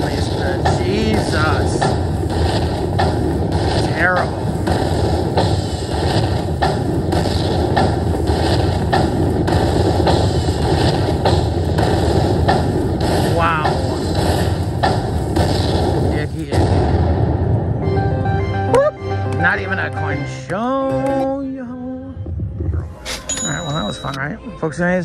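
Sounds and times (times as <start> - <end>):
heavy rhythmic thumps: 0.0 - 21.2
slot machine win music: 17.8 - 21.2, 23.1 - 24.3.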